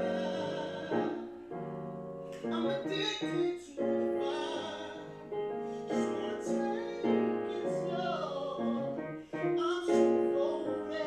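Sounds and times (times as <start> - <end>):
man singing a slow ballad: 0.0 - 1.4, 2.4 - 11.0
piano accompaniment: 0.0 - 11.0.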